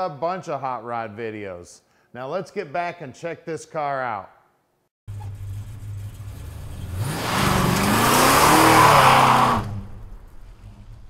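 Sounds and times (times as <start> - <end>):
car engine idling and revving: 5.1 - 11.0.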